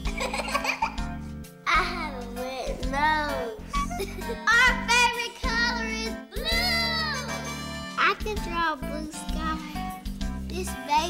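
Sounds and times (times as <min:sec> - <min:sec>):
children's song music: 0:00.0 - 0:11.0.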